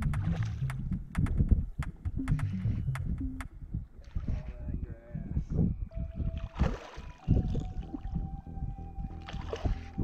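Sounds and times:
wind on microphone: 0.0s - 10.0s
faint wavering tones: 4.1s - 10.0s.

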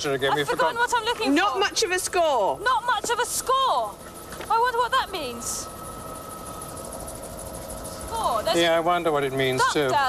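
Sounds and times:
faint steady whine: 0.0s - 10.0s
helicopter rotor flutter: 0.0s - 10.0s.

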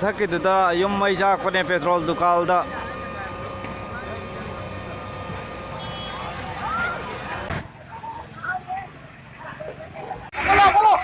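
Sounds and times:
distant voices of onlookers: 0.0s - 11.0s
steady street noise: 0.0s - 11.0s.

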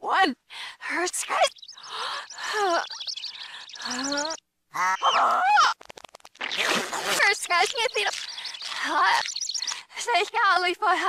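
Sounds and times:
altered cartoon voice crying out: 4.8s - 5.8s.

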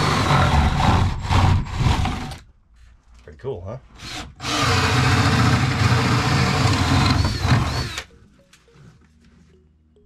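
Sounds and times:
drill boring into wood: 0.0s - 2.4s, 4.0s - 8.1s.

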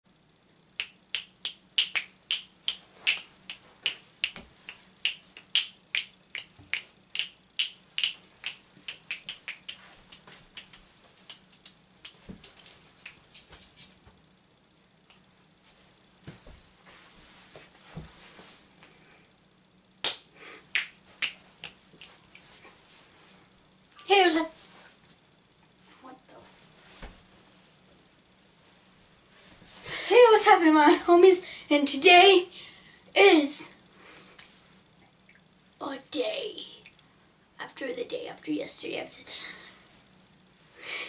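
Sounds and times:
fingers snapping: 0.8s - 13.5s, 20.0s - 22.5s.

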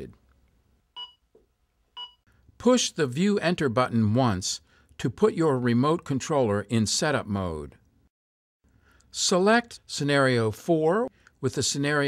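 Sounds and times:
short electronic beeps: 1.0s - 1.2s, 2.0s - 2.2s.

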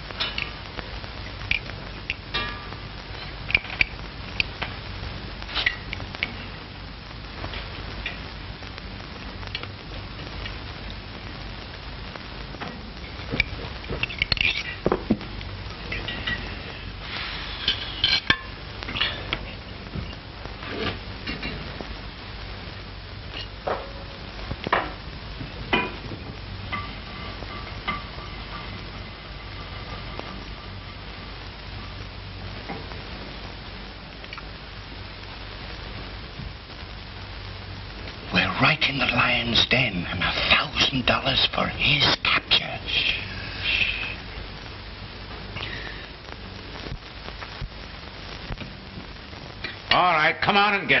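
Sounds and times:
film soundtrack hiss and hum: 0.0s - 51.0s.

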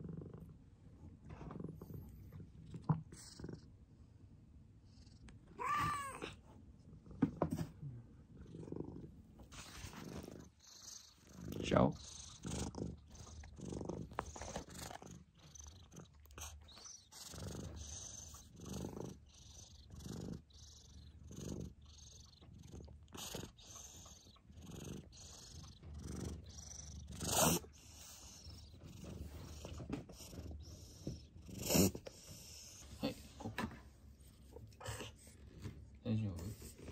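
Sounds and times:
cat purring: 0.0s - 36.9s.

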